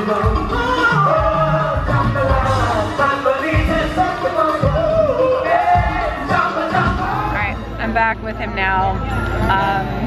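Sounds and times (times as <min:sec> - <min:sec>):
drum beat: 0:00.0 - 0:07.5
keyboard: 0:00.0 - 0:10.0.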